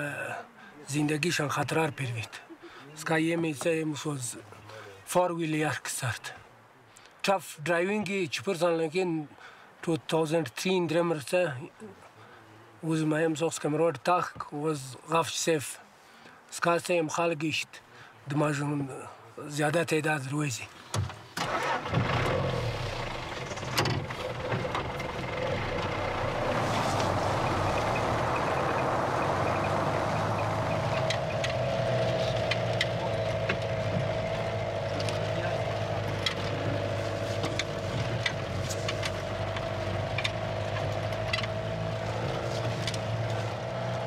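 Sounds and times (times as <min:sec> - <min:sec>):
vehicle engine running: 0:21.5 - 0:44.0
knocks and rattles: 0:23.2 - 0:26.1.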